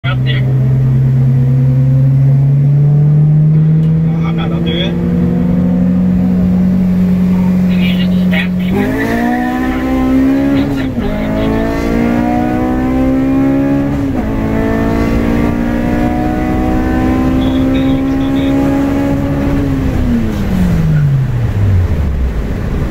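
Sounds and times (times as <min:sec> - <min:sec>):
car engine revving: 0:00.0 - 0:22.9.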